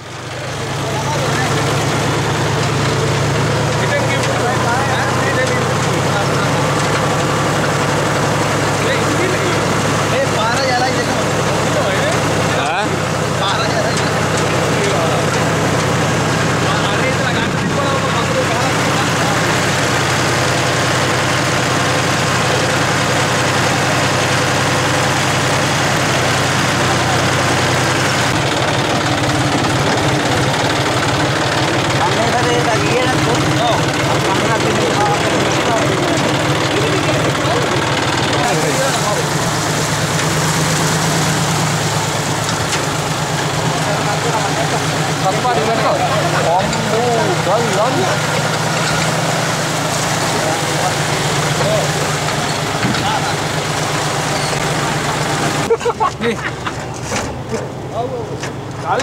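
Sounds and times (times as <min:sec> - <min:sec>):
vehicle engine running: 0:00.0 - 0:59.0.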